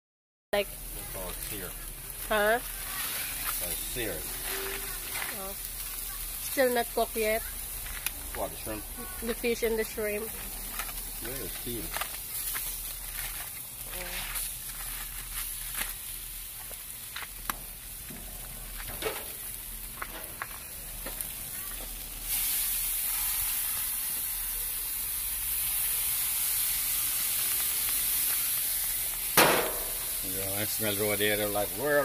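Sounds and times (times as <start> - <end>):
crackles and clicks: 0.6 - 26.1, 26.9 - 30.4
chicken sizzling on a grill: 0.6 - 32.0
sauce poured on sizzling meat: 22.2 - 32.0.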